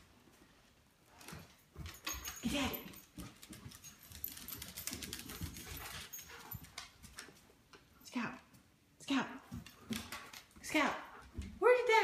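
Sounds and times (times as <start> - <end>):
dog claws clicking on floor: 1.1 - 7.9, 9.4 - 11.5.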